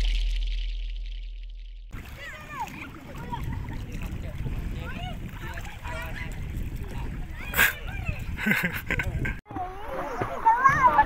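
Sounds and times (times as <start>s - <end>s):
steady low rumble: 0.0s - 7.4s
children shouting while playing: 2.0s - 3.6s, 4.8s - 8.4s, 9.5s - 11.0s.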